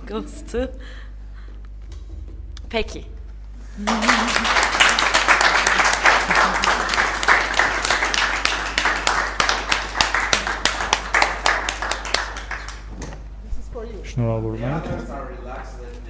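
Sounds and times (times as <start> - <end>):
many hands clapping: 3.8 - 12.9.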